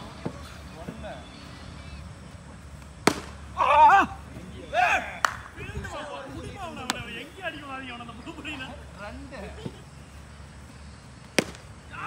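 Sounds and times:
cricket bat hitting ball: 3.0 - 3.4, 11.3 - 11.7
player shouting: 3.5 - 5.3.

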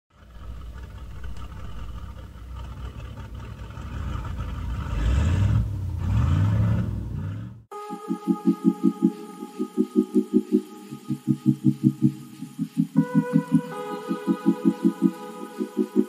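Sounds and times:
vehicle engine rumbling and revving: 0.1 - 7.7.

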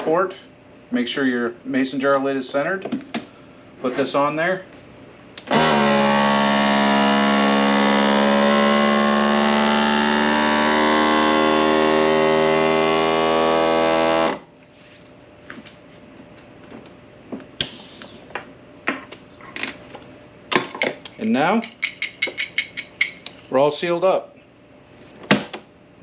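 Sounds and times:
vacuum sealer pump running: 5.3 - 14.6.

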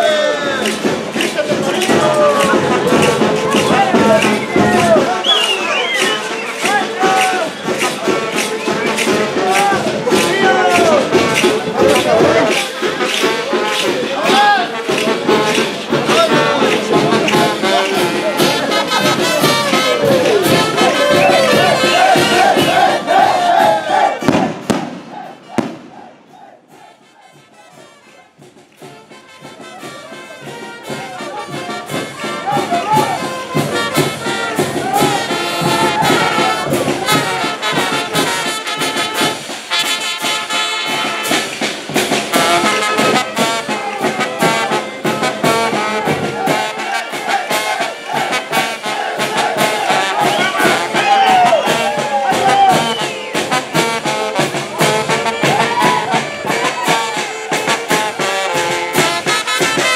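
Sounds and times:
brass band playing: 0.0 - 59.9.

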